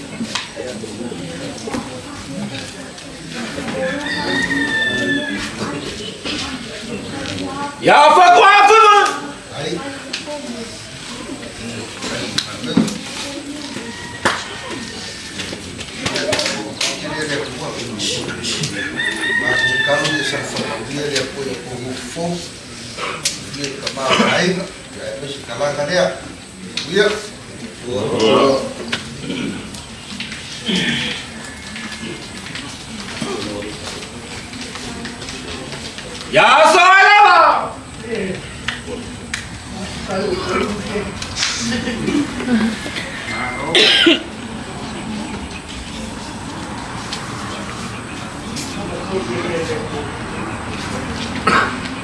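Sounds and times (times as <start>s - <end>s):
faint background voices: 0.0s - 52.0s
rooster crowing: 3.6s - 5.8s, 13.5s - 15.7s, 18.4s - 21.3s
loud cough: 43.7s - 44.3s, 51.4s - 51.8s.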